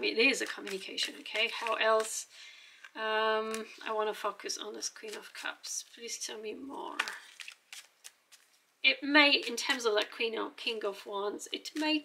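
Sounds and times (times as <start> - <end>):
cards being shuffled: 0.1 - 3.8, 4.8 - 5.6, 6.9 - 8.6, 11.7 - 12.0.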